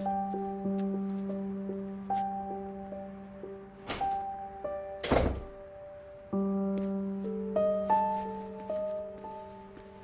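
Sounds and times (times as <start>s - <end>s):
soft background score: 0.0s - 10.0s.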